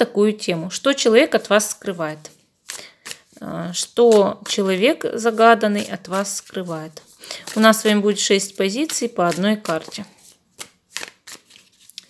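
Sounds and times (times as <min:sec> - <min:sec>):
cards being shuffled: 0:02.6 - 0:12.0.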